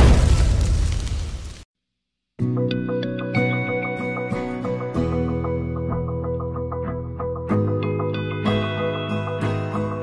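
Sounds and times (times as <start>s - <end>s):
boom impact rumble: 0.0s - 1.6s.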